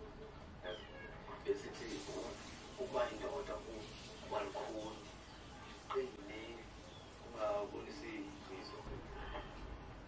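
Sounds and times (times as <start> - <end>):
man talking on television: 0.6 - 9.4.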